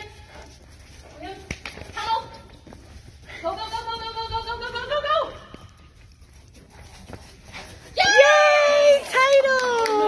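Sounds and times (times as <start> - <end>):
woman cheering: 8.0 - 10.0.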